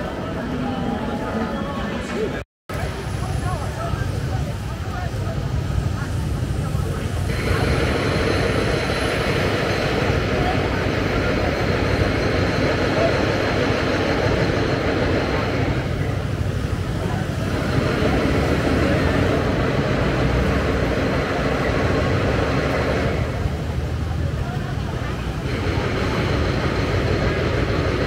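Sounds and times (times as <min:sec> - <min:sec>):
crowd of pedestrians chattering: 0:00.0 - 0:28.0
road traffic rumble: 0:00.0 - 0:28.0.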